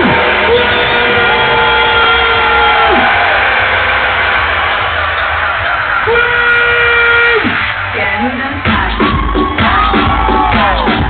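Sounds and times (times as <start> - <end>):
loud electronic dance music: 0.0 - 11.0.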